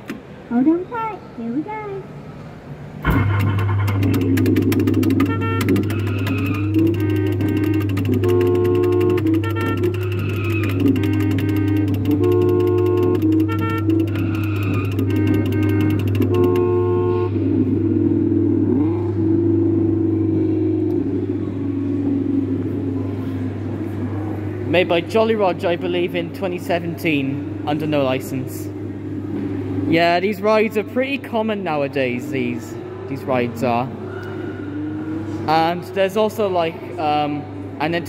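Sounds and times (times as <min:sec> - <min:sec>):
steady low hum: 0:02.2 - 0:35.5
upbeat electronic music: 0:03.0 - 0:16.7
engine-revving sound effects: 0:03.0 - 0:24.7.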